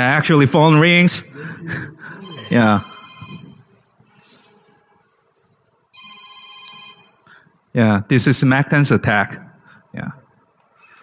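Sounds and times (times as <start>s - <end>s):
smartphone ringtone: 2.2s - 3.7s, 6.0s - 7.3s.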